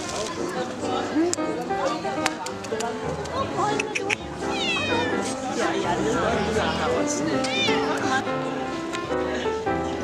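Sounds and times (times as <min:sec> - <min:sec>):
cat meowing: 0:03.9 - 0:05.3, 0:07.4 - 0:08.1.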